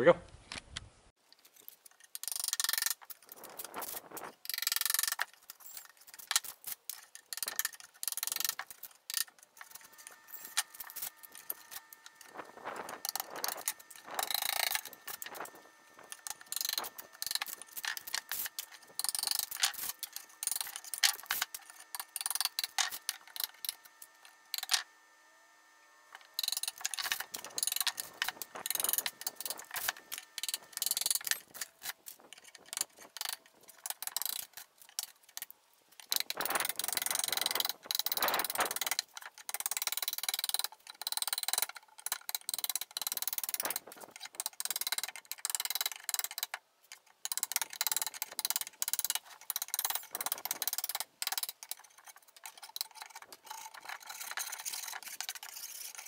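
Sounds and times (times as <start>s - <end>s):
wood veneer cracking and scraping: 2.9s - 4.4s.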